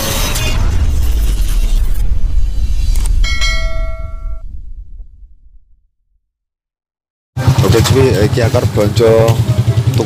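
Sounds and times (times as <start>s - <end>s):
deep rumble: 0.0s - 6.3s
bright bell-like chime: 3.2s - 4.4s.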